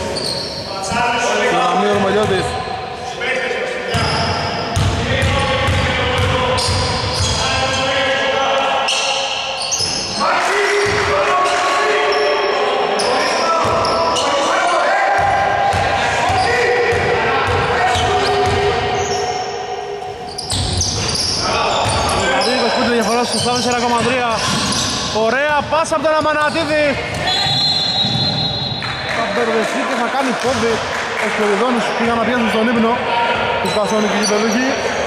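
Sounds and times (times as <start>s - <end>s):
sneakers squeaking on floor: 0.0s - 2.6s, 3.7s - 7.9s, 8.8s - 11.0s, 12.1s - 14.5s, 15.2s - 29.1s, 31.8s - 35.0s
players' voices calling out: 0.0s - 35.0s
basketball bouncing on wooden floor: 28.0s - 28.4s.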